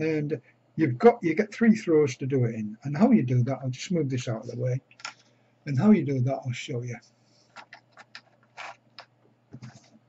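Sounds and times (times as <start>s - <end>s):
paper scraping and tapping on table: 7.4s - 9.0s.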